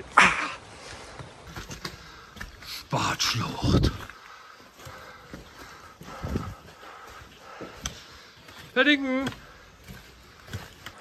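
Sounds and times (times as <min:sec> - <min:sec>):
footsteps on dirt and stone: 0:00.0 - 0:11.0.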